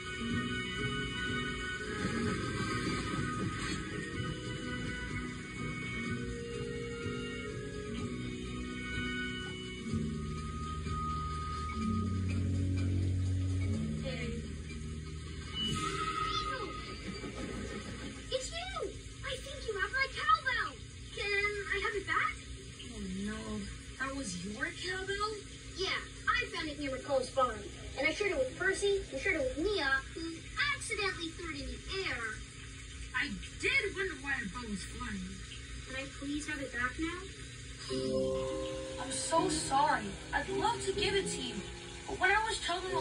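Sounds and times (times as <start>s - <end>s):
cartoon music from television: 0.0s - 22.5s, 37.7s - 43.0s.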